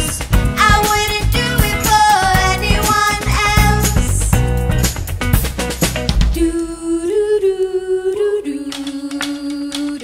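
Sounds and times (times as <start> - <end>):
women singing wordless note: 6.4 - 10.0.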